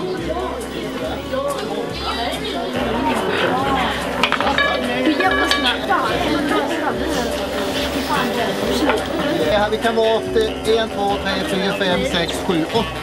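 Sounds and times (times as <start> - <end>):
children chattering: 0.0 - 13.0.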